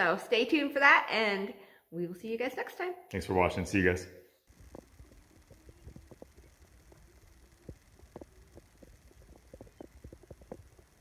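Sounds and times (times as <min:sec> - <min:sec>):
soft irregular thumps: 0:04.5 - 0:11.0.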